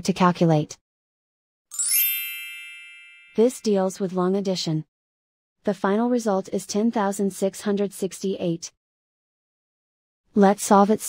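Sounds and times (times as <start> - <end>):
bright chime ringing: 1.7 - 3.8.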